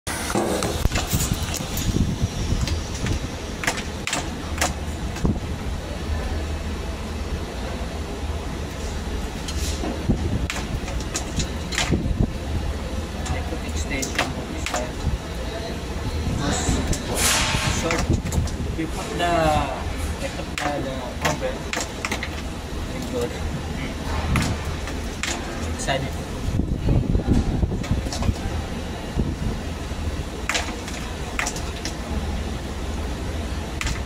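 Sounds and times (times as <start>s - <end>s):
low machinery hum: 0.1s - 34.0s
clicks and knocks on metal: 2.6s - 5.3s, 10.4s - 12.1s, 20.5s - 22.5s, 24.2s - 25.8s, 30.5s - 32.0s.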